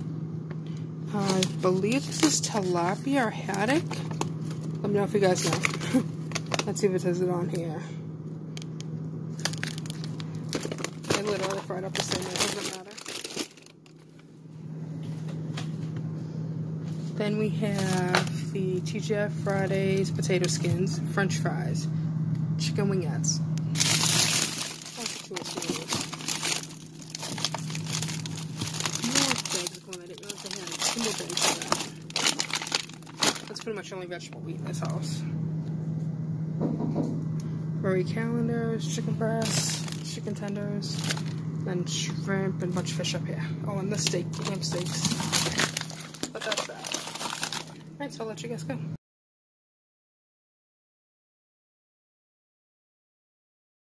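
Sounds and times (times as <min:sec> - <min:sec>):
steady low hum: 0:00.0 - 0:49.0
frozen food packages handled: 0:00.6 - 0:06.9, 0:09.3 - 0:14.3, 0:17.6 - 0:18.5, 0:23.7 - 0:35.1, 0:39.4 - 0:41.4, 0:43.8 - 0:47.9
plastic bag crackling: 0:01.1 - 0:06.8, 0:09.3 - 0:14.1, 0:17.6 - 0:18.4, 0:23.7 - 0:33.9, 0:39.4 - 0:41.4, 0:43.9 - 0:47.9.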